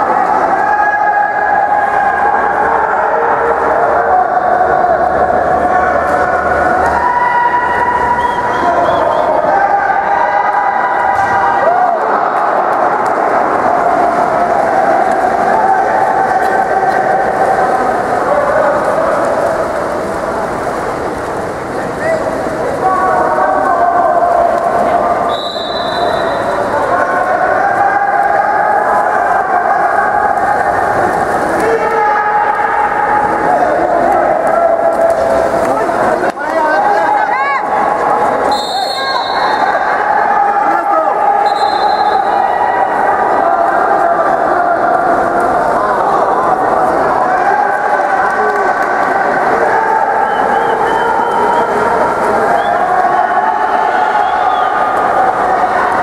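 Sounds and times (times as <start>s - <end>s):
spectators shouting and cheering: 0.0s - 56.0s.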